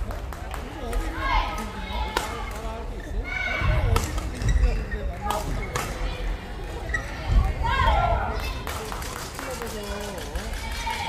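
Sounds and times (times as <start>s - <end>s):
hall background murmur: 0.0s - 11.0s
racket hitting shuttlecock: 3.9s - 4.2s, 5.3s - 6.0s.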